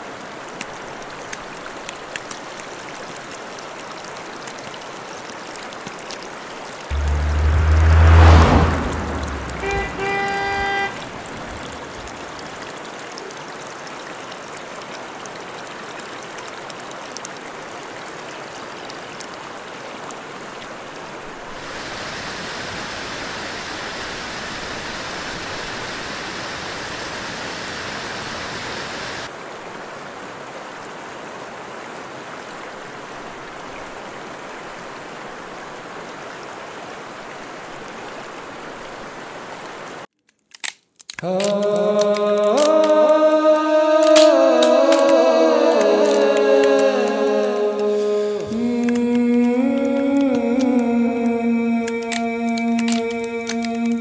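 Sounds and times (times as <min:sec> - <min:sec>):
river and waterfall rushing: 0:00.0 - 0:40.0, 0:41.4 - 0:54.0
loud low whoosh: 0:06.9 - 0:11.8
short horn tone: 0:06.9 - 0:11.8.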